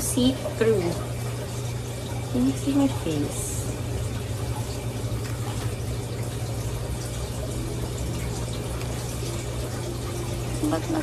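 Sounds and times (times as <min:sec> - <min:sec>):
low hum: 0:02.3 - 0:11.0.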